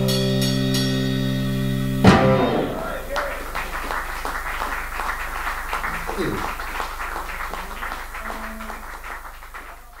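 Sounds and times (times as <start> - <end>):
indistinct voices: 5.8 - 6.8.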